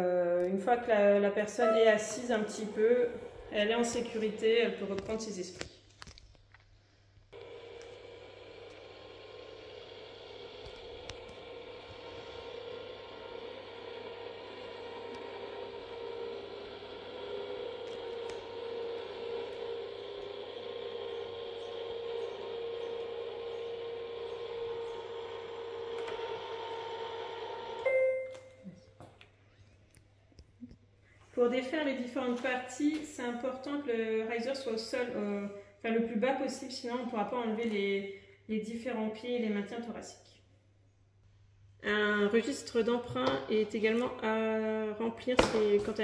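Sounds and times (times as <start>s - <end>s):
electric motor running: 7.4s - 27.9s.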